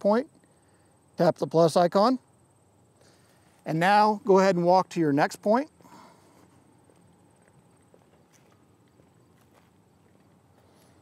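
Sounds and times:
faint footsteps: 5.8 - 11.0.

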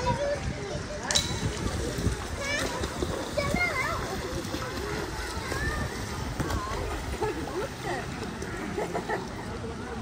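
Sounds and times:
splashing water: 0.0 - 10.0.

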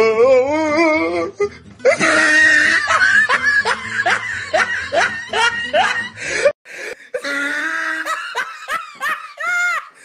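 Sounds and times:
person laughing: 1.8 - 10.0.

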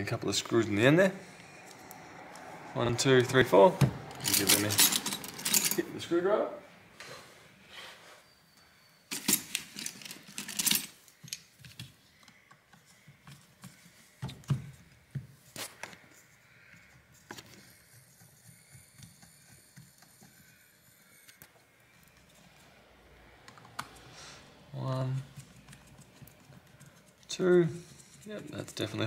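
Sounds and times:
hand tools clattering: 4.1 - 6.0, 9.1 - 11.0.

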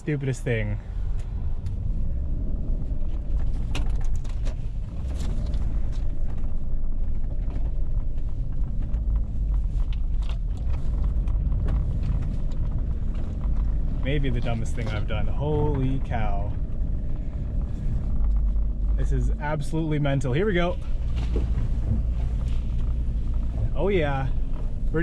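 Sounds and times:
car rumbling through snow: 0.0 - 25.0.

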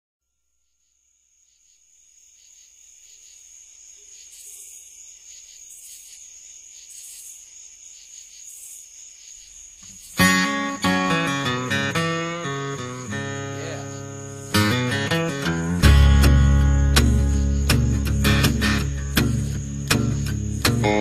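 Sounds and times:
crickets chirping: 0.2 - 21.0
shimmering insect call: 0.3 - 21.0.

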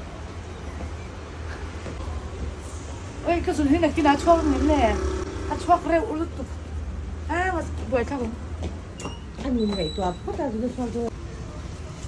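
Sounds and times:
street traffic rumble: 0.0 - 12.0
people talking: 3.2 - 6.6, 9.4 - 12.0.

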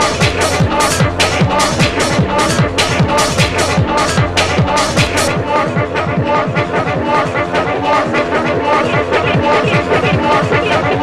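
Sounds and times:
fast techno music: 0.0 - 11.0.

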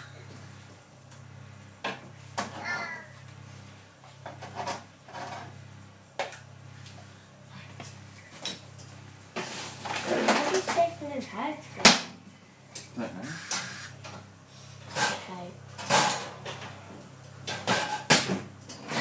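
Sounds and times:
steady low hum: 0.0 - 18.9.

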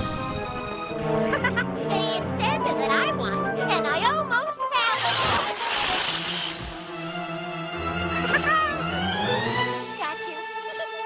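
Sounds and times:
held orchestral notes: 6.8 - 10.6.

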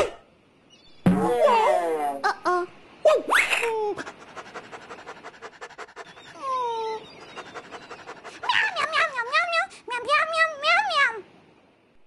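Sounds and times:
cartoon animal panting: 4.0 - 9.8
high cartoon vocal cry: 8.3 - 9.7.

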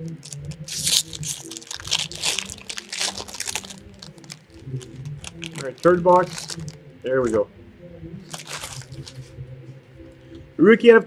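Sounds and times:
cards shuffling: 0.0 - 6.8, 8.3 - 9.3
faint steady hum: 0.0 - 11.0.

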